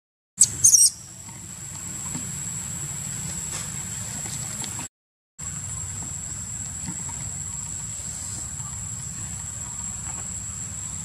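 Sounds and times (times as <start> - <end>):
baby monkey squeal: 0.4 - 1.0.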